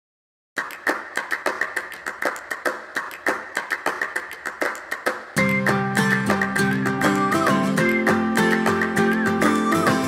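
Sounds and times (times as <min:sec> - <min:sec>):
rhythmic percussion hits: 0:02.4 - 0:10.0.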